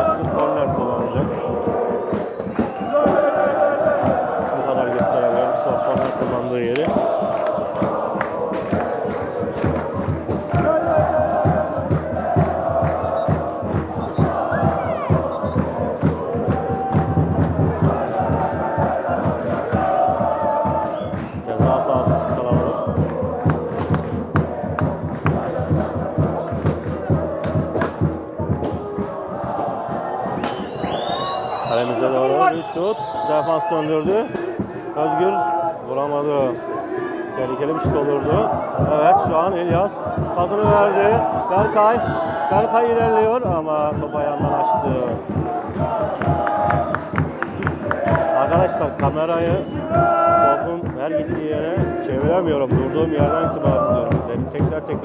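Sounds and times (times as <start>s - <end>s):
rhythmic sharp hits: 0.0s - 36.5s, 37.6s - 55.0s
crowd chanting: 0.0s - 55.0s.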